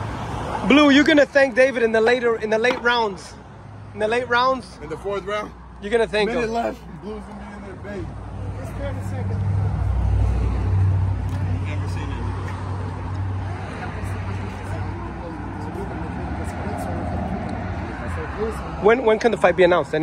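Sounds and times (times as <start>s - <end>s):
vehicle engine rumble: 0.0s - 20.0s.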